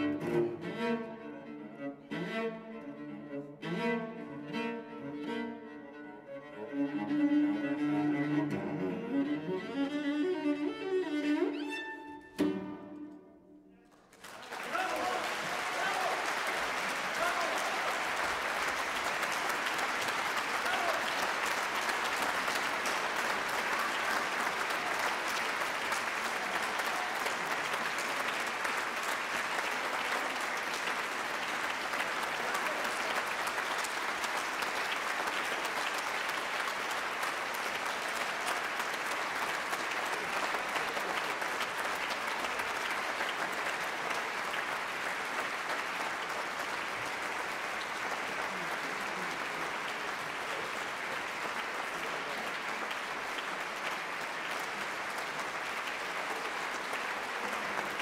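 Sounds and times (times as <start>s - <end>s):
large audience applauding: 13.8s - 58.0s.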